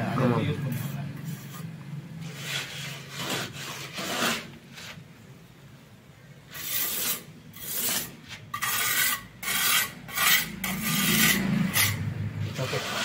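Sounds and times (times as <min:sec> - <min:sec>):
hand float rasping on plaster: 0:00.8 - 0:05.0, 0:06.5 - 0:13.0.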